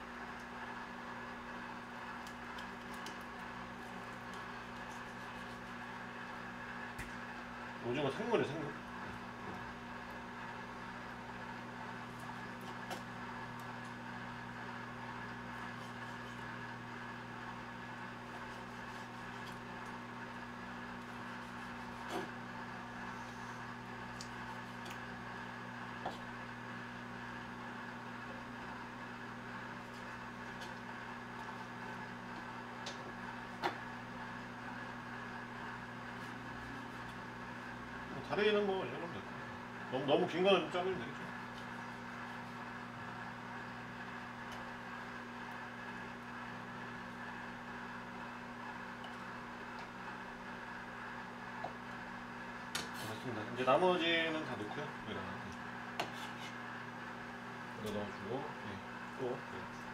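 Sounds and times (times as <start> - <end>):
microwave oven humming: 0.0 - 59.9.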